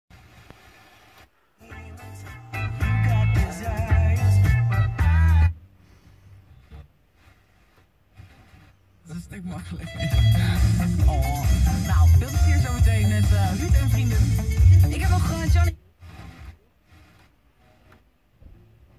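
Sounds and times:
radio static hiss: 0.1 - 1.3, 6.6 - 18.0
radio music with singing: 0.1 - 18.0.

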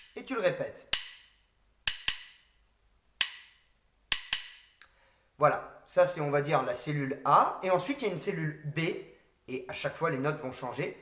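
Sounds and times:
drumsticks tapping rhythm: 0.0 - 2.6, 3.2 - 5.0.

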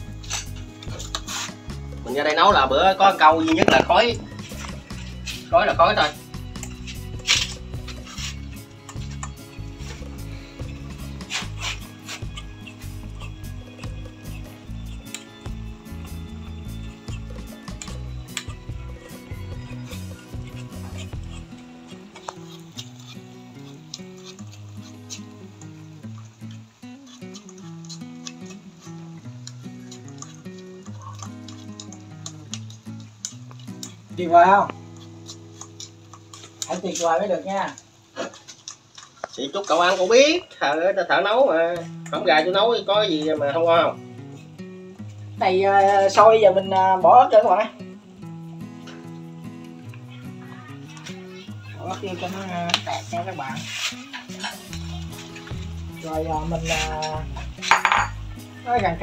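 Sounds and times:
background music with bass line: 0.0 - 25.2, 41.5 - 59.0.

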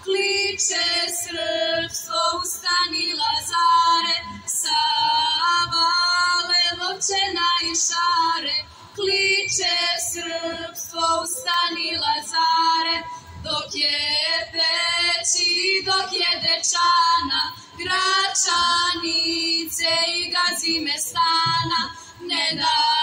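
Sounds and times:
women singing folk song together: 0.0 - 23.0.

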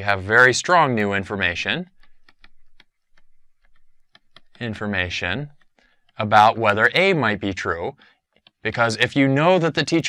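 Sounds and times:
stylus tapping on screen: 0.9 - 6.4, 8.3 - 8.7.

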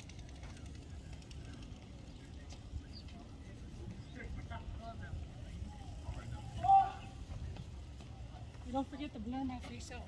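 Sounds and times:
faint scattered voices: 0.0 - 10.0.

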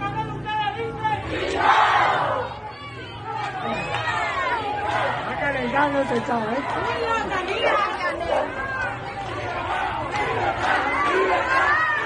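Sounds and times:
crowd of protesters shouting: 0.0 - 12.0.

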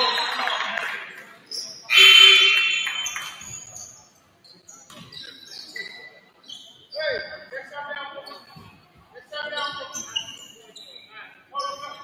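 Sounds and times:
voices in a hall: 0.0 - 12.0
scoreboard buzzer: 1.9 - 3.4.

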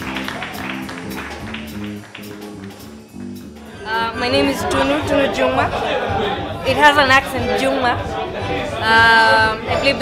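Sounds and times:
faint music: 0.0 - 10.0.

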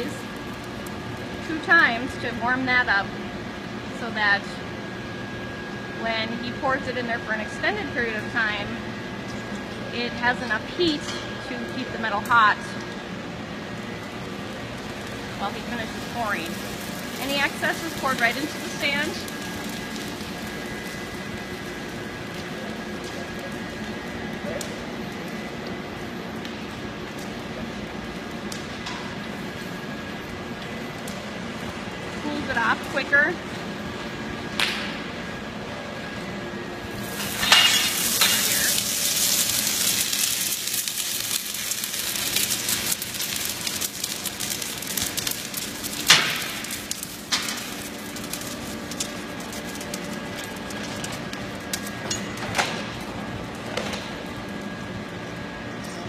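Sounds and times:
molten metal hissing and crackling: 0.0 - 56.0
steady foundry hum: 0.0 - 56.0.

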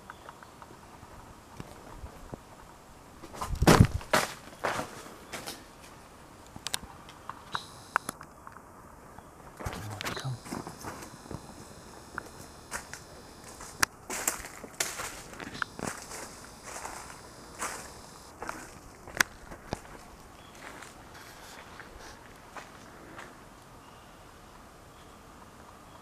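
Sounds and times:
footsteps walking: 9.6 - 23.4.

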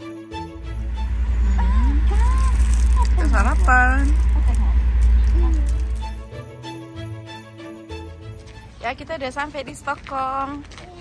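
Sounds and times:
train rumbling: 0.3 - 7.3.

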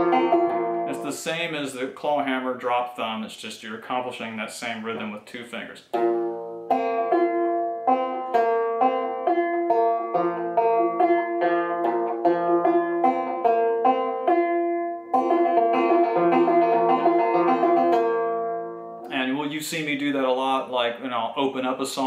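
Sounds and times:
banjo picking: 0.0 - 22.0.

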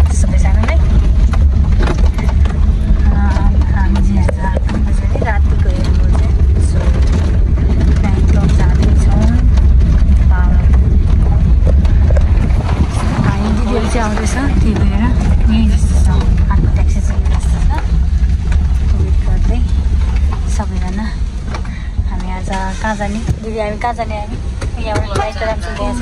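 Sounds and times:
people talking: 0.0 - 1.1, 2.0 - 19.8, 20.4 - 26.0
car engine and tyres rumbling: 0.0 - 26.0.

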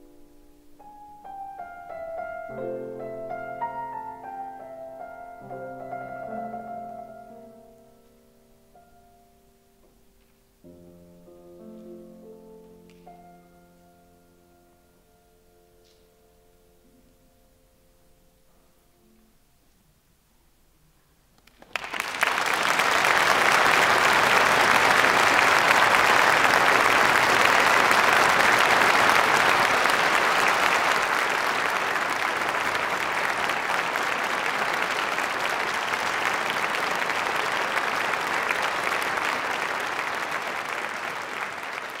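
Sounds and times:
audience applauding: 21.4 - 42.0.

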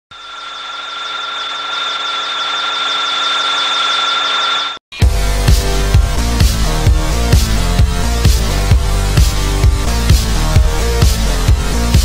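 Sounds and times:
high-pitched electronic whine: 0.1 - 4.8.

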